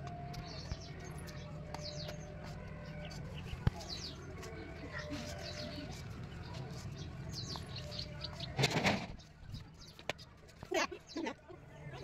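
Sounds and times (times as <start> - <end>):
small birds chirping: 0.2 - 12.0.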